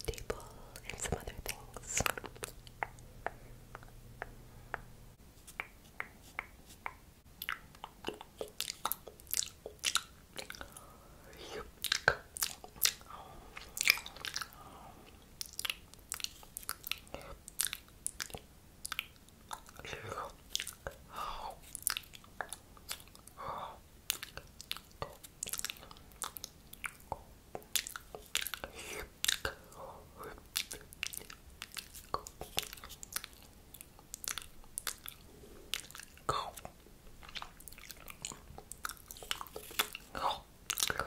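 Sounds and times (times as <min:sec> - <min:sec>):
wet mouth clicks and smacks: 0:00.0 - 0:10.8, 0:11.6 - 0:21.0, 0:21.6 - 0:23.4, 0:24.0 - 0:29.7, 0:30.3 - 0:41.0
breathy hushes: 0:13.0 - 0:15.3.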